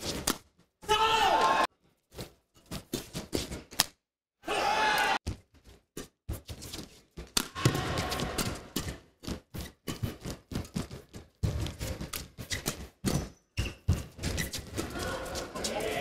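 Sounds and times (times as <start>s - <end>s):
indoor arena background noise: 0.0s - 1.7s, 4.4s - 5.2s, 7.3s - 16.0s.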